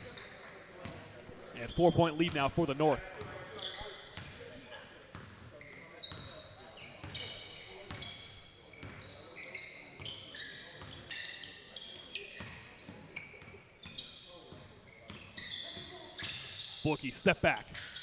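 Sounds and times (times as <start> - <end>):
sneaker squeaks: 0.0 - 1.1, 2.9 - 4.4, 5.1 - 16.9, 17.5 - 18.0.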